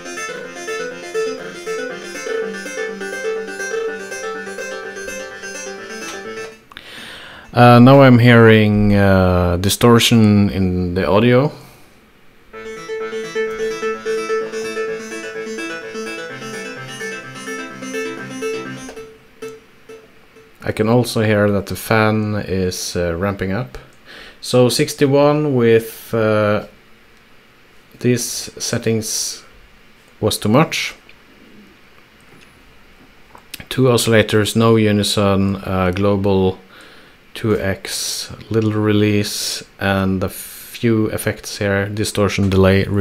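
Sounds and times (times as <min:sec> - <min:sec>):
distorted plucky synth notes: 0:00.0 - 0:06.7, 0:12.6 - 0:20.9
faint low hiss: 0:00.0 - 0:43.0.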